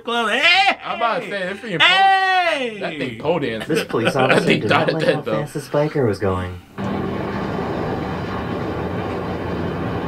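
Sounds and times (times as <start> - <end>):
motorcycle engine drone: 6.8 - 10.0.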